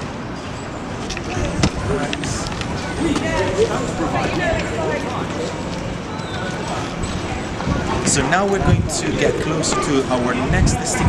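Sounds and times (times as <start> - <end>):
footsteps on paving stones: 1.0 - 7.0
people talking: 1.3 - 11.0.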